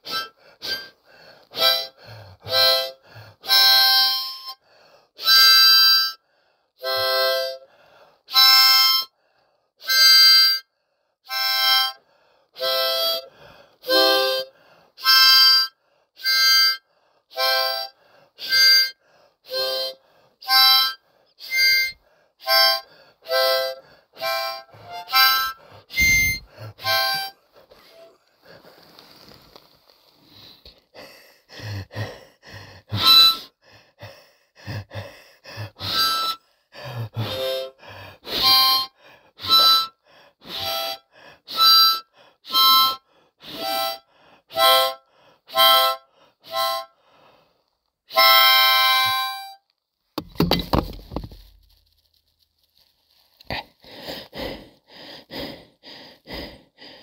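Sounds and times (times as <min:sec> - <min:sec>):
harmonica chord blasts: 0:19.5 - 0:28.1.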